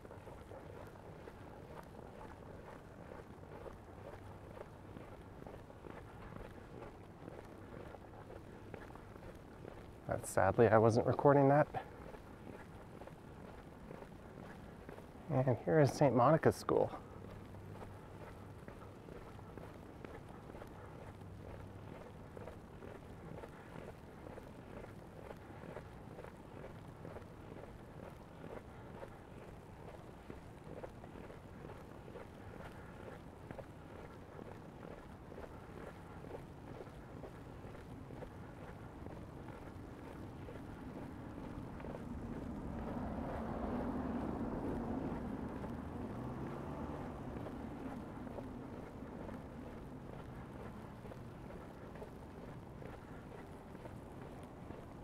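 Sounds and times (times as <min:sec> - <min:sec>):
city noise: 0:00.0 - 0:55.0
vehicle passing on snowy street: 0:00.0 - 0:55.0.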